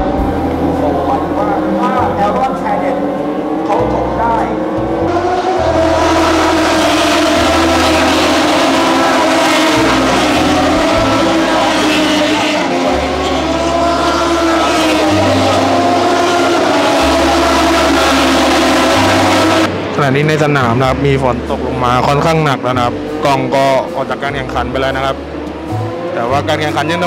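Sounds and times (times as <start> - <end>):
racing motorcycles at speed: 0.0 - 20.6, 21.3 - 27.0.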